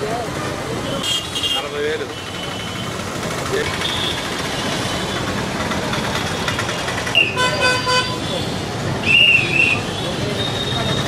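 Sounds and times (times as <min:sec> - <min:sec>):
crowd: 0:00.0 - 0:11.0
traffic: 0:00.0 - 0:11.0
vehicle horn: 0:07.2 - 0:08.4.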